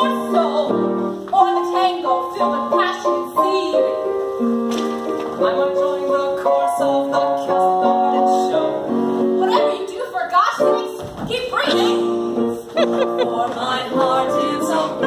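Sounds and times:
piano music: 0.0 - 15.0.

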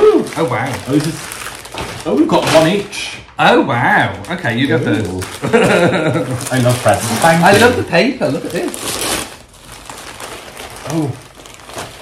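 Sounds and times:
wrapping paper rustling: 0.0 - 12.0.

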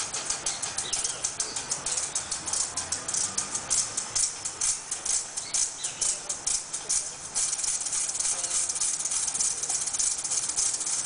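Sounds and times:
maracas shaken: 0.0 - 11.0.

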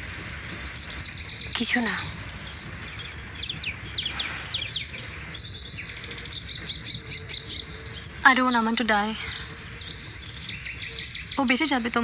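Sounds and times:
low outdoor hum: 0.0 - 12.0
small birds chirping: 0.0 - 12.0.

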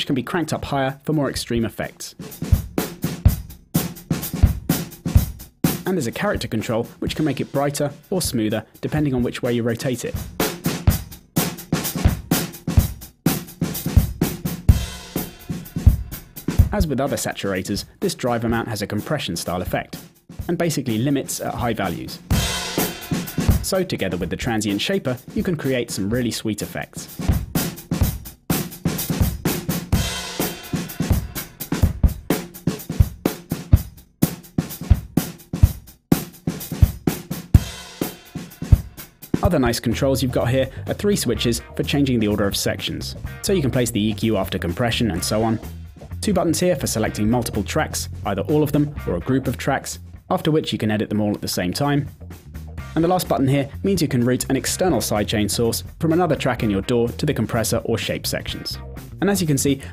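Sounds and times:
programmed drum loop: 0.0 - 59.9.

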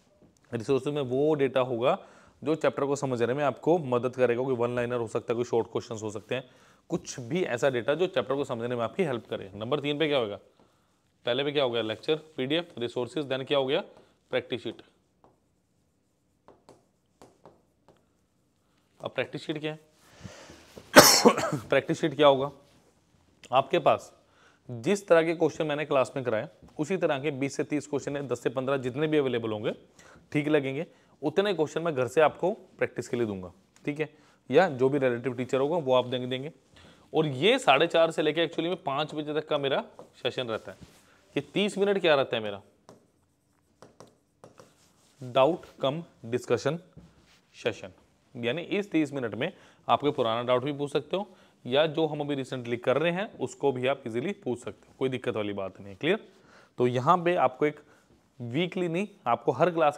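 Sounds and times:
pen tapping on touchscreen: 16.4 - 18.1, 42.8 - 43.1, 43.7 - 44.8.

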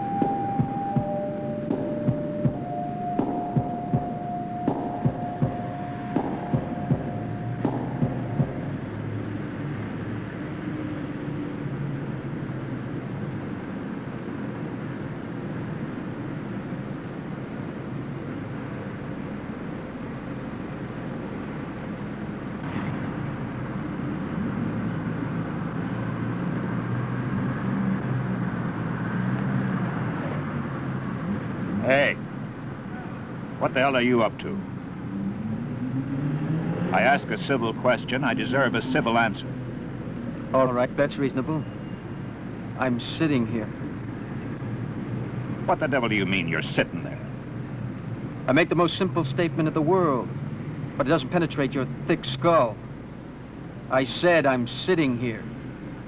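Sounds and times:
sharp knocks: 0.0 - 8.8
held tone: 0.0 - 9.0
loud wavering sound: 0.0 - 9.1
traffic: 0.0 - 56.0.

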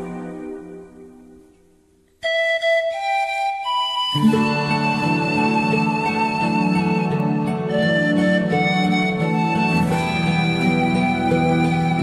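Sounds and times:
slow instrumental melody: 0.0 - 12.0.

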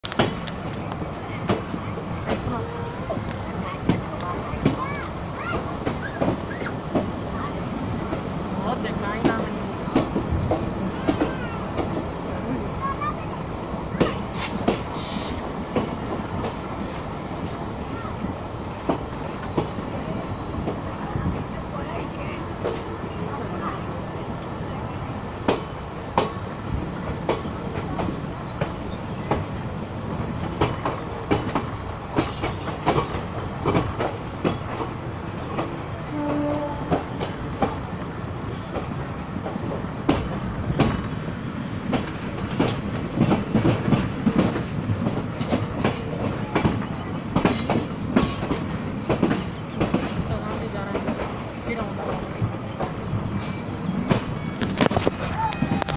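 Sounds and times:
train wheels rumbling on rails: 0.0 - 55.9.

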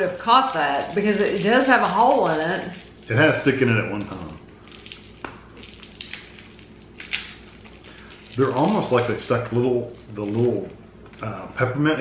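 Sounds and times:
plastic wrapper crinkling: 0.0 - 11.3.

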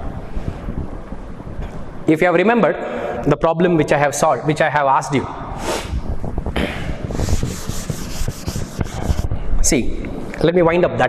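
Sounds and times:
duster rubbing chalkboard: 7.0 - 9.3.

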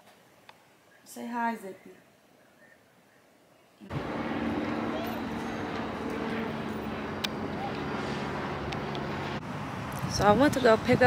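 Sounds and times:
vehicle traffic hum: 3.8 - 11.0.

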